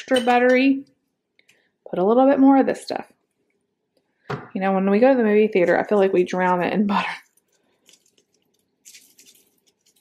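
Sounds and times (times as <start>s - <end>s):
popcorn crackling: 6.9s - 10.0s.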